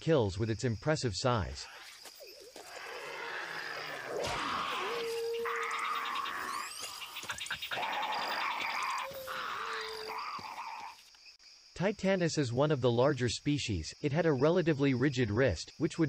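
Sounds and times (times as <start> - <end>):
hoarse bird calls: 1.5 - 11.1.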